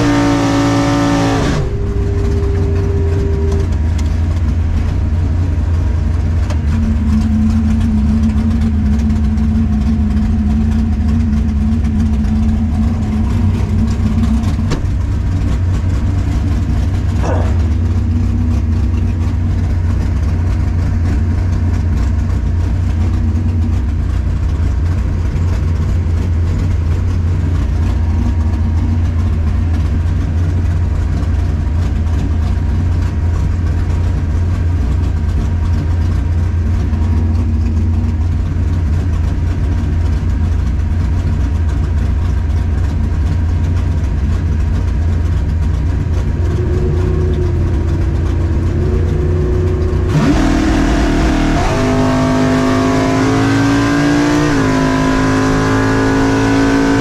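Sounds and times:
race car engine idling: 0.0s - 57.0s.

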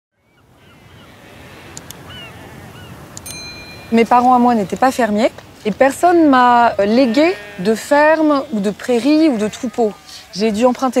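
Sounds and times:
bird calls: 0.2s - 5.5s
wind-like wash: 0.3s - 11.0s
bright ringing tone: 3.2s - 4.6s.

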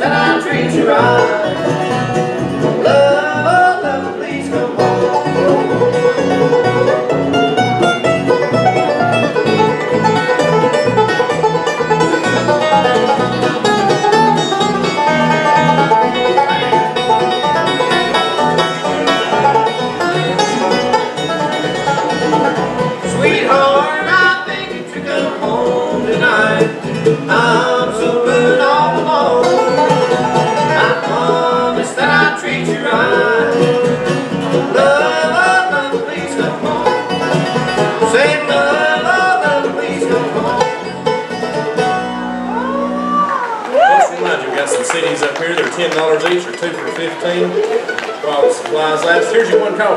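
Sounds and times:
banjo rolling picking: 0.0s - 43.6s, 44.2s - 49.9s
bluegrass trio playing: 0.0s - 49.9s.

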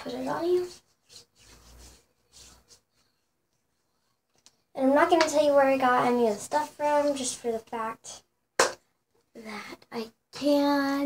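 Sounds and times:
skin sliding on skin: 0.0s - 4.2s.

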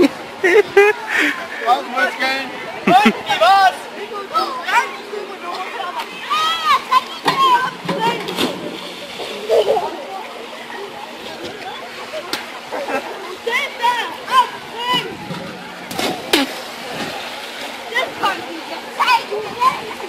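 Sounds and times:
children calling and shouting: 0.0s - 20.0s
water splashing: 5.4s - 20.0s
person jumping into pool: 7.3s - 10.0s, 14.9s - 17.7s.

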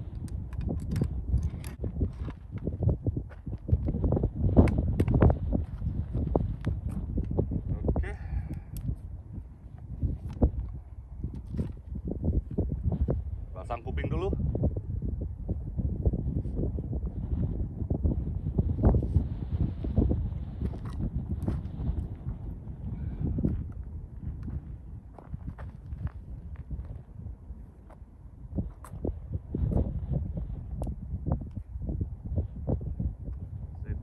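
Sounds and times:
wind buffeting microphone: 0.0s - 34.0s
footsteps on gravel: 24.4s - 27.0s.

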